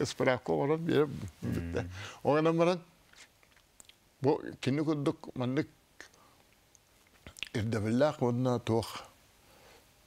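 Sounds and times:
man speaking: 0.0 - 2.9, 7.4 - 9.2.

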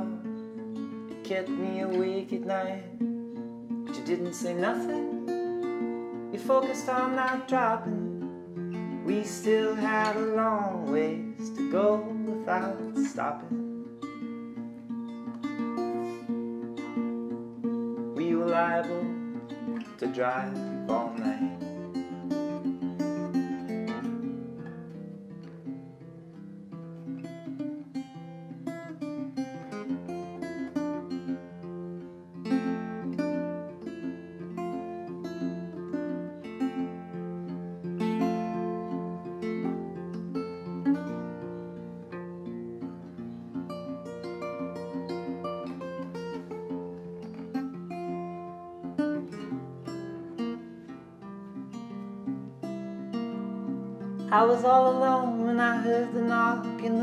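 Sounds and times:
acoustic guitar picking: 0.0 - 57.0.

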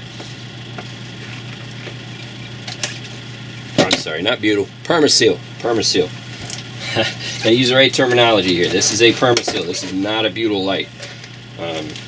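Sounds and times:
workshop equipment hum: 0.0 - 12.0.

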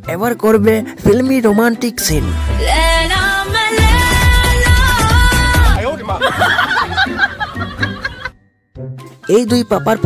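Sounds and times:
background music: 0.0 - 10.0.

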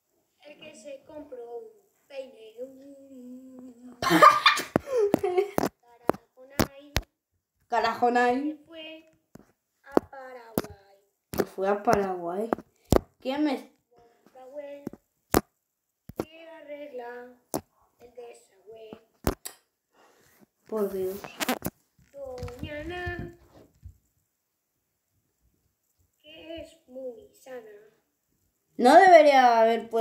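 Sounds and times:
sharp taps: 16.1 - 16.3.

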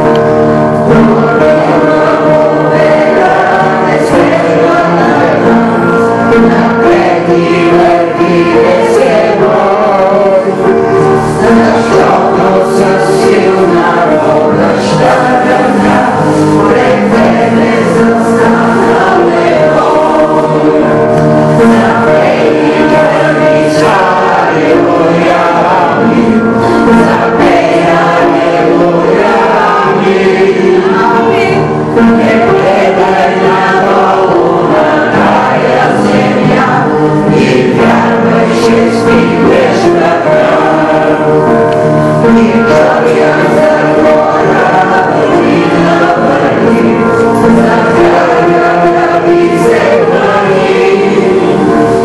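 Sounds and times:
congregation singing a hymn: 0.0 - 52.0.

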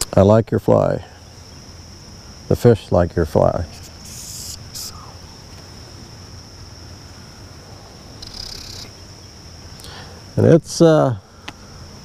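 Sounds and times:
insects trilling: 0.0 - 12.0
bursts of hiss: 3.6 - 5.3.

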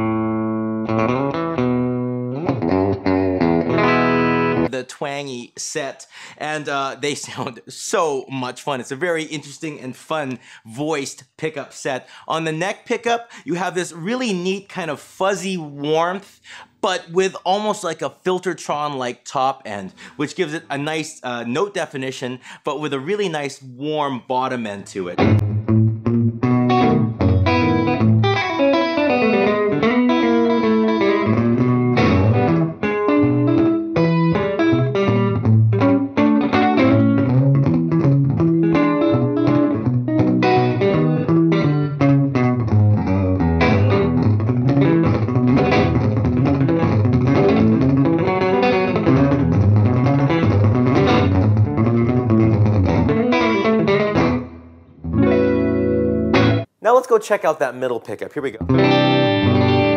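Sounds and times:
electric guitar through amp: 0.0 - 4.7, 25.2 - 56.7, 58.6 - 59.9.

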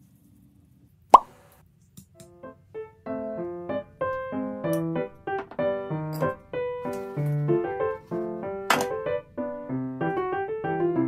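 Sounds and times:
soft piano notes: 2.1 - 11.0.

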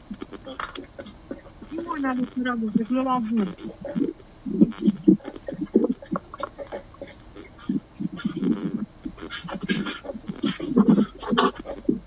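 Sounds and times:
person making choppy vocal sounds: 0.0 - 12.0.

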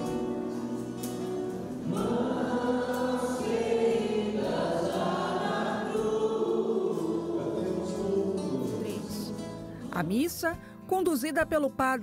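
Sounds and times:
choir singing a hymn: 0.1 - 9.7.

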